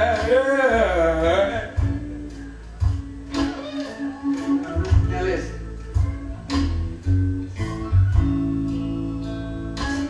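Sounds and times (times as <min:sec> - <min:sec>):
slow instrumental blues ballad: 0:00.0 - 0:10.0
steady bass: 0:00.0 - 0:10.0.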